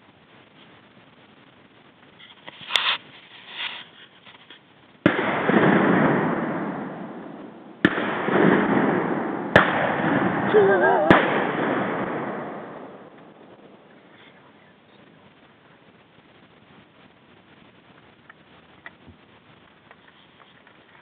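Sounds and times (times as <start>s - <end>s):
shotgun shots: 5.0s - 13.6s.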